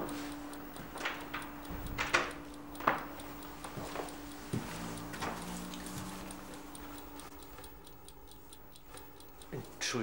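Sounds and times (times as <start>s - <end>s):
clock-like ticking: 0.0s - 10.0s.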